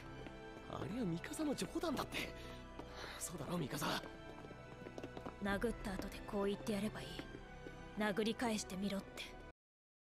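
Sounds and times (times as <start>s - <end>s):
soft background music: 0.0s - 9.6s.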